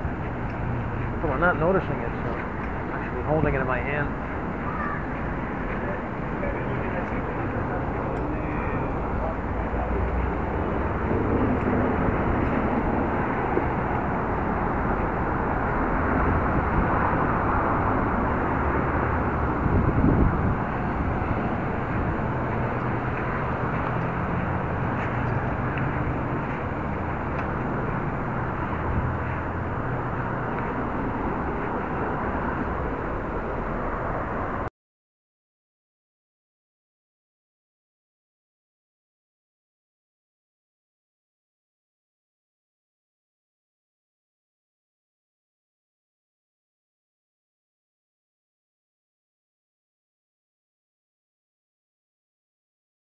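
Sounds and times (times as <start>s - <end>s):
indistinct voices of passers-by: 0.0s - 34.7s
muffled traffic noise: 0.0s - 34.7s.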